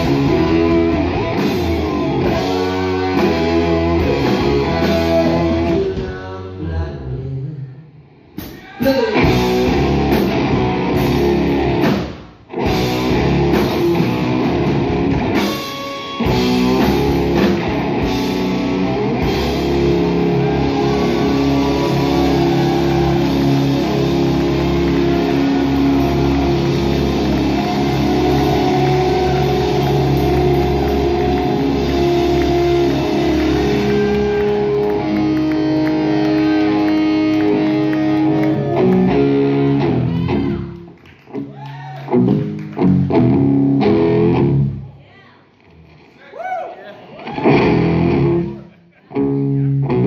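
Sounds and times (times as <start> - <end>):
live rock band playing: 0.0 - 6.3, 8.4 - 44.8, 47.2 - 50.0.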